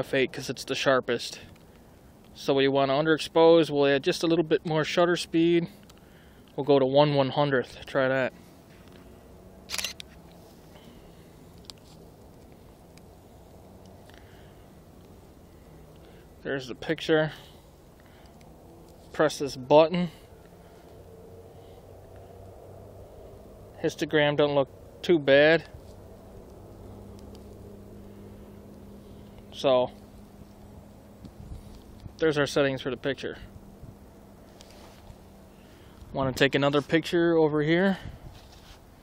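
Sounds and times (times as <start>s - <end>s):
low background hum: 0.0s - 39.0s
camera shutter clack: 9.7s - 10.1s.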